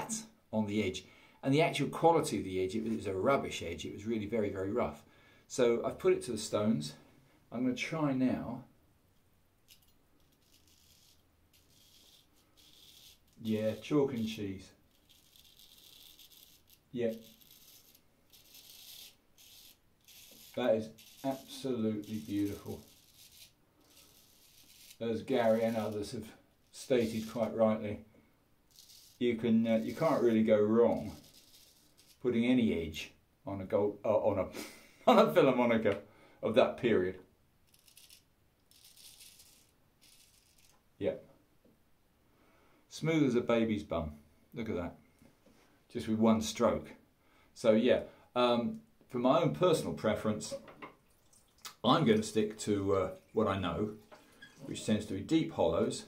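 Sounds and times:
razor scraping through stubble: 9.7 - 27.8, 28.7 - 32.2, 37.7 - 40.8.

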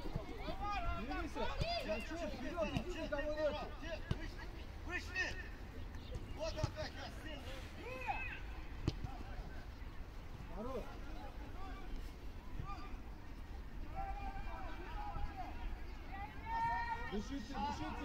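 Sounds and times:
players shouting: 0.0 - 5.6, 6.4 - 9.3, 13.8 - 18.0
ball being kicked: 8.8 - 9.2.

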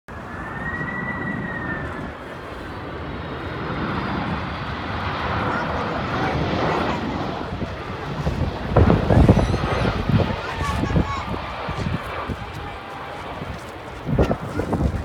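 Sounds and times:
jet airliner engine rush: 0.1 - 15.0.

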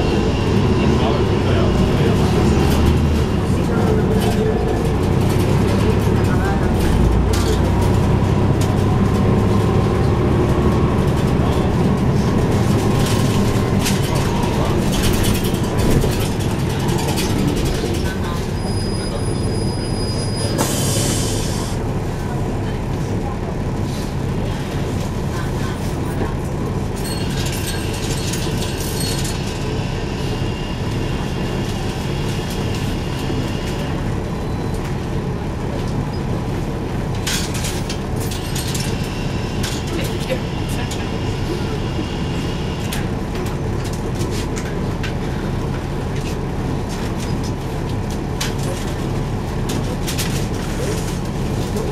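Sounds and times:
bus engine rumbling: 0.0 - 51.9.

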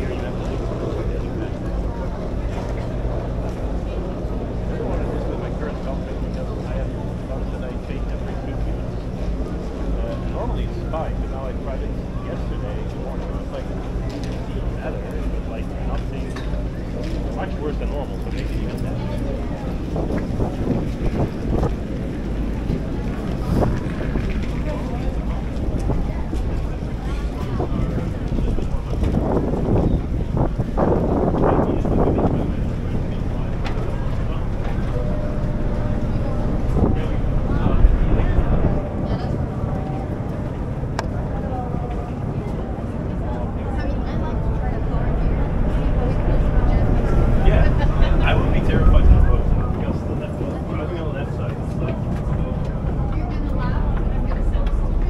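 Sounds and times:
ferry engine rumble: 0.0 - 55.0
people talking: 0.0 - 55.0
wind buffeting microphone: 0.0 - 55.0.

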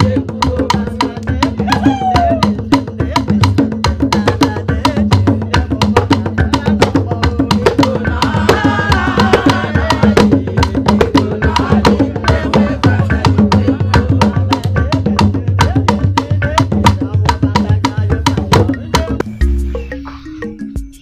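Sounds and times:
voices singing: 0.0 - 20.8
wood-block and drum beat: 0.0 - 21.0.

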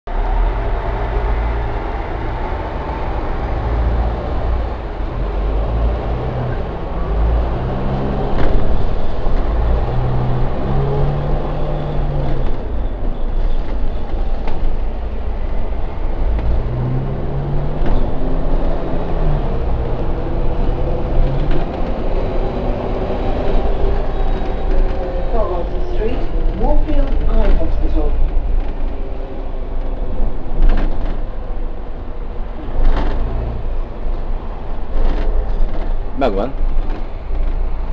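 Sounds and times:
bus engine rumbling: 0.1 - 37.9.

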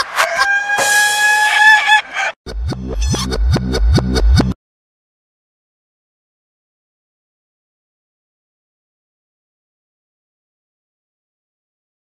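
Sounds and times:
rooster crowing: 0.0 - 2.4.

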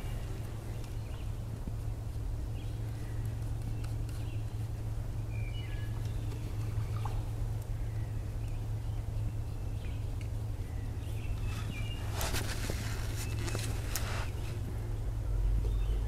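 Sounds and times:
songbirds chirping: 0.0 - 16.0
steady low hum: 0.0 - 16.0.

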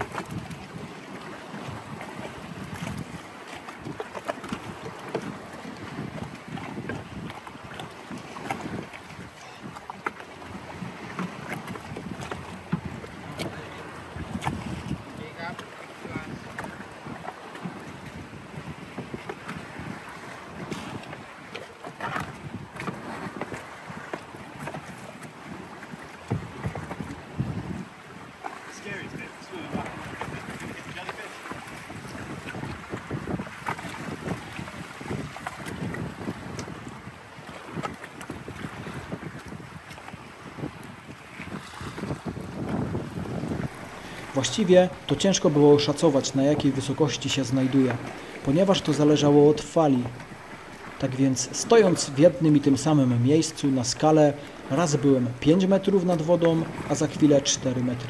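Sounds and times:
sea water sloshing and slapping: 0.0 - 58.0
wind buffeting microphone: 0.0 - 58.0.

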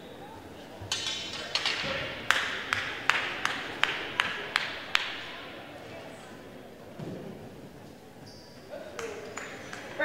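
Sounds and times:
hand claps in a large hall: 0.9 - 5.6, 8.8 - 10.0.

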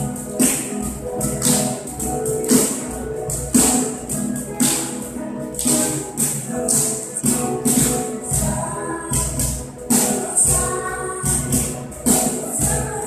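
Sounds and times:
acoustic guitar: 0.0 - 13.0
children's choir singing: 3.6 - 13.0.

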